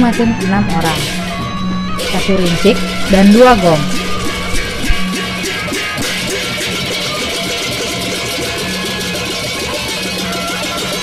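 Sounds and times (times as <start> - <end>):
low held tone: 0.0 - 7.2
hand cymbals clashing: 0.0 - 11.0
wavering melody: 0.0 - 11.0.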